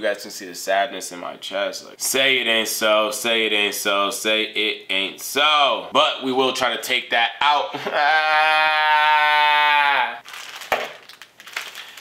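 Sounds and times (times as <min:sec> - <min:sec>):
man wailing: 0:07.7 - 0:10.2.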